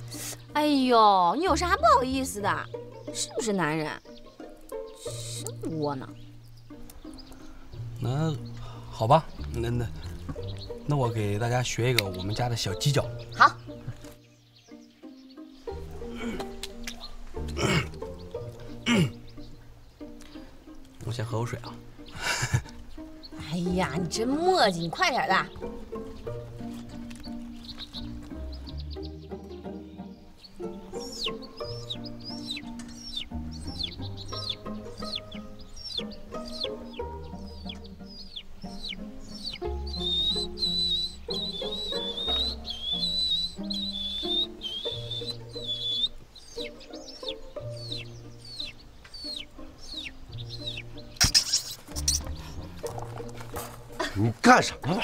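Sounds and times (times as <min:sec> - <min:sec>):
soft background music: 0:00.0 - 0:55.0
man mimicking chick peeping: 0:38.8 - 0:46.1.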